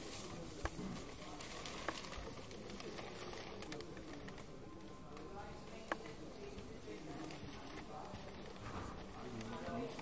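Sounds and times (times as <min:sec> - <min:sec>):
faint background murmur: 0:00.0 - 0:10.0.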